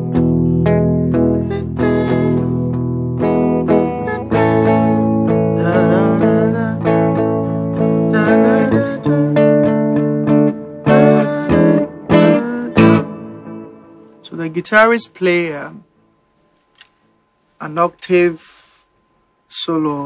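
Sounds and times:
electric guitar strumming chords: 0.0 - 15.9.

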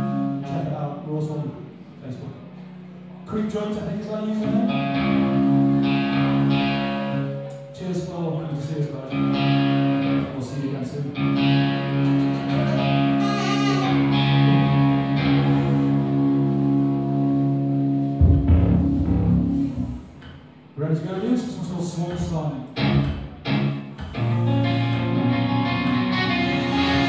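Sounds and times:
electric guitar held chords: 0.0 - 0.5, 4.4 - 7.8, 9.1 - 10.4, 11.1 - 20.2, 22.8 - 27.0
deep low rumble: 18.1 - 20.2.

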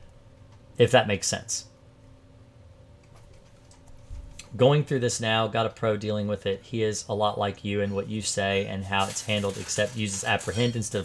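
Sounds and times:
low electrical hum: 0.0 - 11.0
computer keyboard typing: 3.0 - 4.0.

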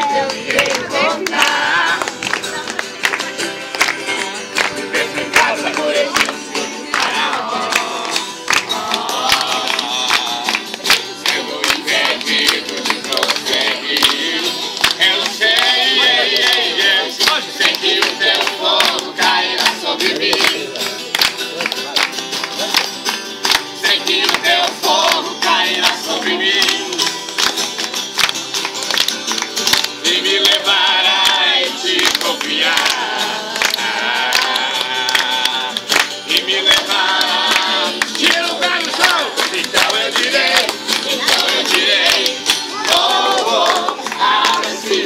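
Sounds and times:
group singing: 0.0 - 2.4, 3.8 - 21.0, 23.7 - 27.2, 29.8 - 45.0
strummed acoustic guitars: 0.0 - 45.0
hand claps: 0.1 - 45.0.

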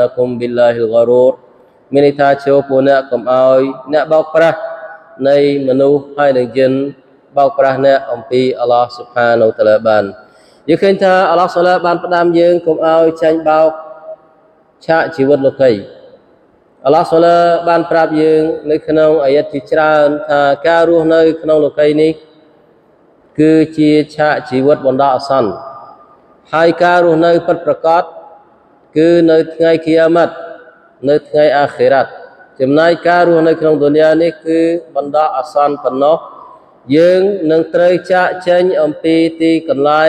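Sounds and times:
man chanting: 0.0 - 16.1, 23.4 - 40.0.

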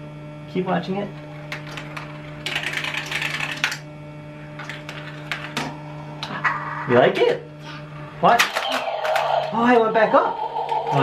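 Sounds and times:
marble launcher humming: 8.2 - 11.0.

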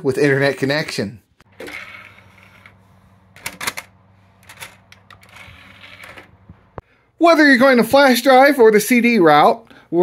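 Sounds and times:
low steady hum: 1.5 - 7.0.

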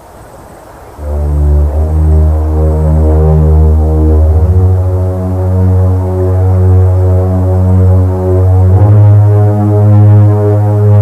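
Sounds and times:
eerie droning film music: 1.0 - 11.0.

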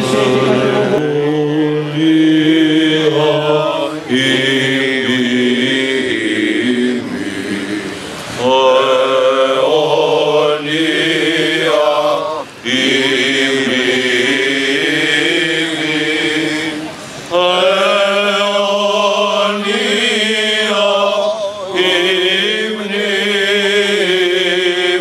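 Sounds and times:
men singing chant: 0.0 - 25.0.

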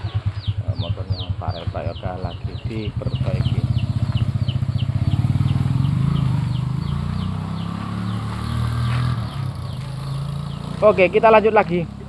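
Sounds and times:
engine idling: 0.0 - 8.2.

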